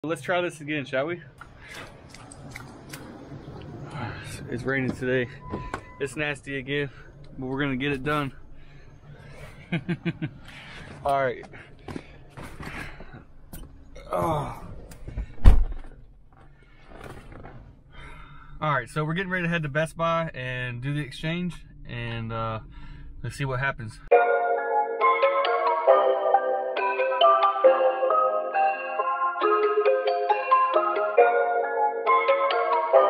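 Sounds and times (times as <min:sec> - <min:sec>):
car cabin rumble: 0:01.9 - 0:11.0.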